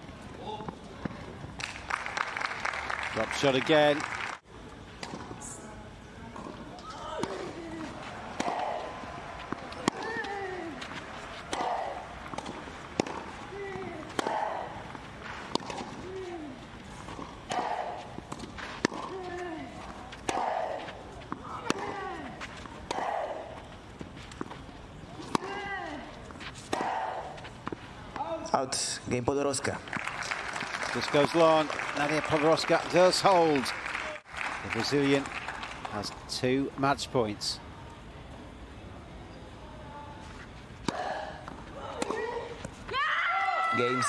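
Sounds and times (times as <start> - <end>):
tennis ball strikes on racquet: 8.4 - 14.7, 15.4 - 16.0, 17.0 - 19.4, 20.2 - 22.2.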